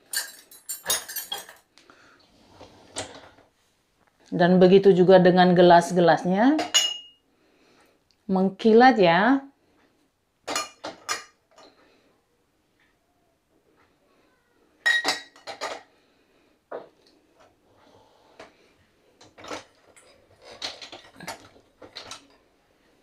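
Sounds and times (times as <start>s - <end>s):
glasses and mugs clinking: 0.1s - 1.6s, 6.6s - 7.2s, 14.8s - 15.8s.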